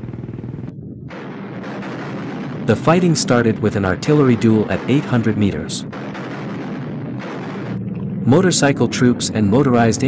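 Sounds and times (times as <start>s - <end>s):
rapid gunfire rattle: 0.0s - 8.4s
rumbling battle din: 0.7s - 10.0s.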